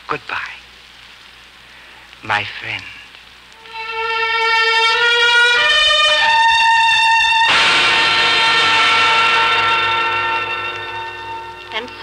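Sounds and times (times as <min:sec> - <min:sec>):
held orchestral chord: 0:03.6 - 0:12.0.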